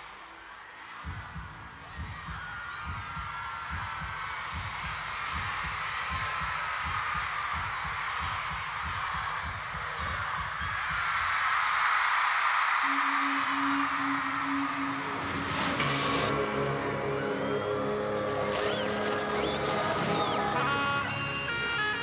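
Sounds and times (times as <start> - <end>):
crowd screaming and whistling: 0.0 - 22.0.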